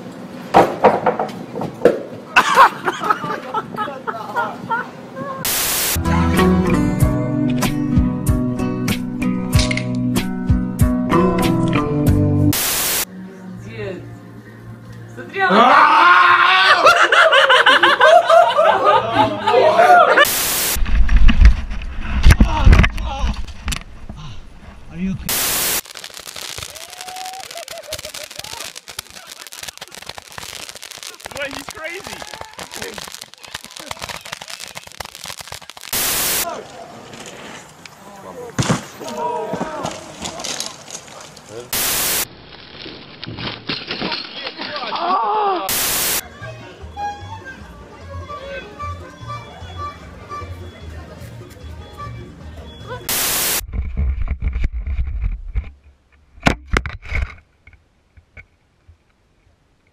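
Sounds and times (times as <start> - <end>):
bursts of static: 5.4 - 6.0, 12.5 - 13.1, 20.2 - 23.9, 24.9 - 36.5, 41.7 - 43.3, 45.7 - 46.2, 53.1 - 55.7
fireworks crackling and popping: 5.4 - 6.0, 12.5 - 13.1, 20.2 - 24.2, 24.8 - 38.0, 39.8 - 45.0, 45.7 - 46.2, 53.1 - 55.8
bike crash rumble and knocks: 38.6 - 41.5.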